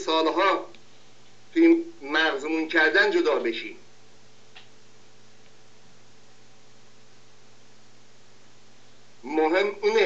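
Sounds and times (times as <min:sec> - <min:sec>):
faint hiss and hum: 0:00.0 - 0:10.0
faint clicks: 0:04.5 - 0:04.8.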